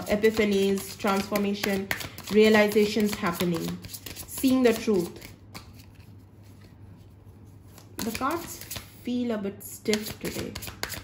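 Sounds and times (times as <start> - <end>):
cards being shuffled: 0.0 - 7.1, 7.7 - 9.0, 9.9 - 11.0.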